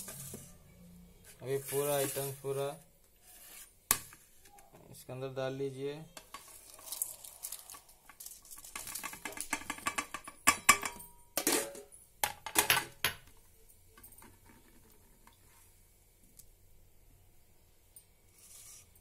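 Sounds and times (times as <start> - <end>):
spices clattering into metal bowl: 6.2 - 13.3.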